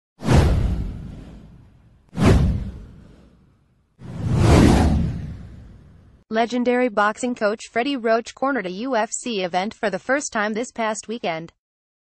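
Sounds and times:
whoosh sound effects: 0.2s - 6.1s.

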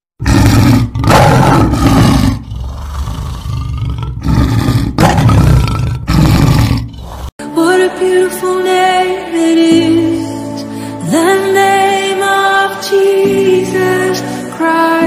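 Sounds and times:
lion roaring: 0.2s - 7.4s
music with sustained notes: 7.4s - 15.0s.

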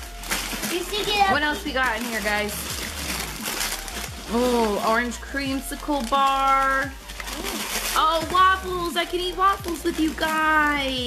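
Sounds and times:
plastic packaging rustling: 0.0s - 11.0s.

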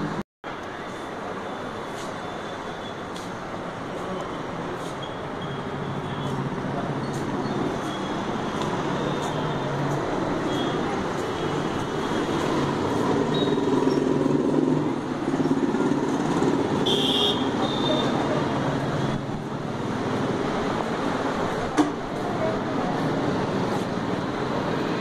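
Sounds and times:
road traffic: 0.0s - 25.0s.

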